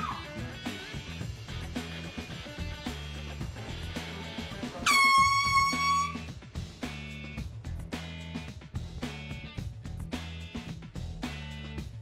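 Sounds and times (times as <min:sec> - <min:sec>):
music with steady beat: 0:00.0 - 0:12.0
air horn blast: 0:04.8 - 0:06.3.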